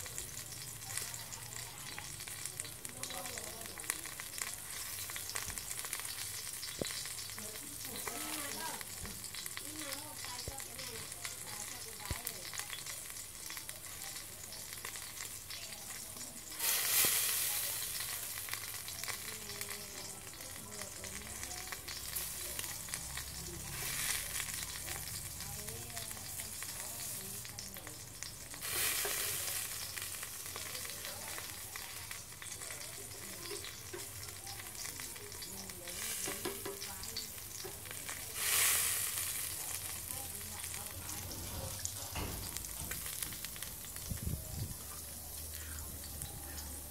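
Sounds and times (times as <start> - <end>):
meat sizzling on grill: 0.0 - 46.9.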